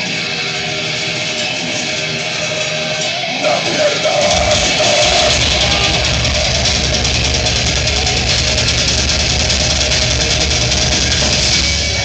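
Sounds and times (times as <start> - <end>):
death metal band playing: 0.0 - 12.0
electric guitar playing alone: 0.0 - 12.0.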